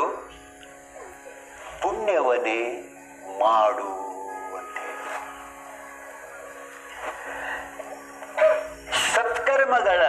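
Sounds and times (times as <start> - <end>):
buzzing musical drone: 0.0 - 10.0.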